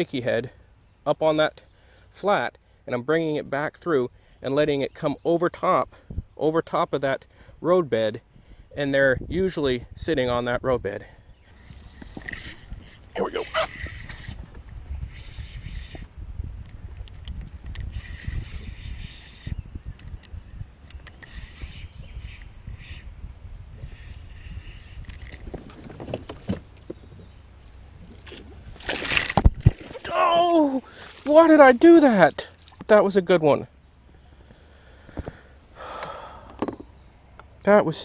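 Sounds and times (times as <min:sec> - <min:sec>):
low rumbling background: 0:08.2 - 0:32.6
spinning reel winding: 0:12.0 - 0:14.4.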